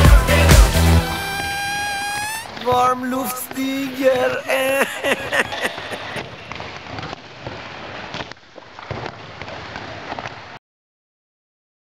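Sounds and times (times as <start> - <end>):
echoing hall hiss: 0.0 - 6.5.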